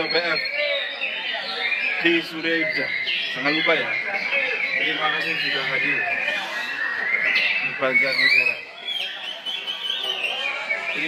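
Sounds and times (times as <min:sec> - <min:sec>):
songbirds singing: 0:00.0 - 0:11.0.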